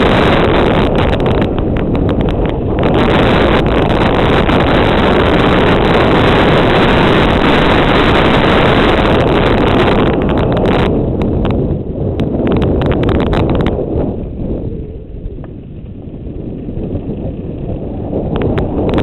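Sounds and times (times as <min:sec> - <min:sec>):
bike rattling over bumpy ground: 0:00.0 - 0:19.0
wind rushing over microphone: 0:00.0 - 0:19.0
quick clicks and clatter from bike: 0:15.2 - 0:19.0.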